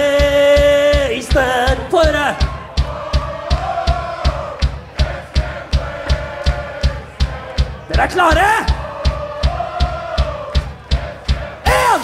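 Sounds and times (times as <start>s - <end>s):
drum kit beat: 0.0s - 12.0s
person singing: 11.6s - 12.0s.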